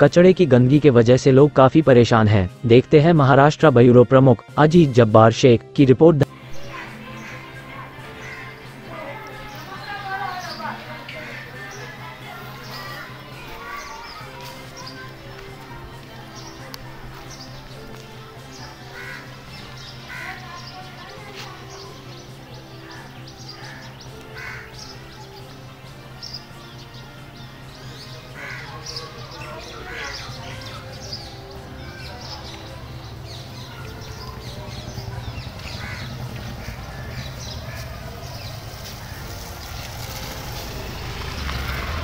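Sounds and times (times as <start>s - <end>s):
street noise: 0.0s - 42.0s
harsh bird calls: 6.4s - 15.2s, 18.4s - 42.0s
vehicle engine rumbling: 30.9s - 42.0s.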